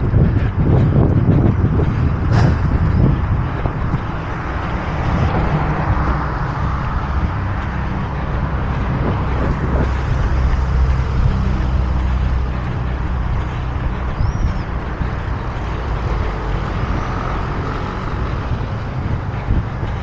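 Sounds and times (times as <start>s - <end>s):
cars driving past: 0.0s - 20.0s.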